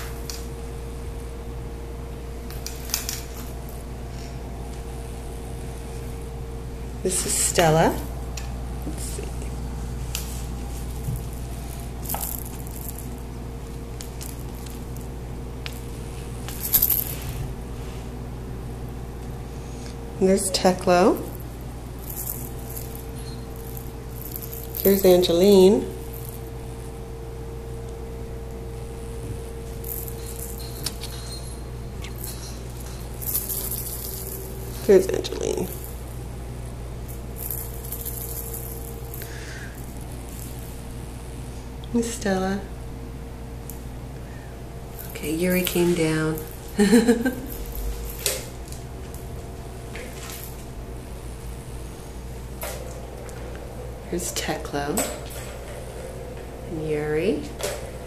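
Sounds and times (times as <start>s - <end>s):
steady low hum: 0.0s - 58.0s
faint rustling: 8.9s - 18.4s, 21.2s - 41.7s.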